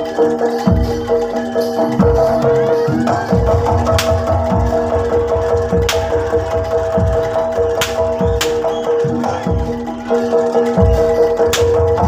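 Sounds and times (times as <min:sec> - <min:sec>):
drums beating fast rhythm: 0:00.0 - 0:12.0
high held melody notes: 0:00.0 - 0:12.0
sharp crack: 0:07.8 - 0:08.7.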